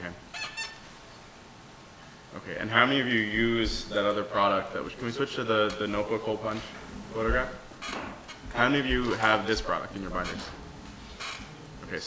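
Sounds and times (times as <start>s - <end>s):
high-pitched squeak: 0.3s - 0.9s.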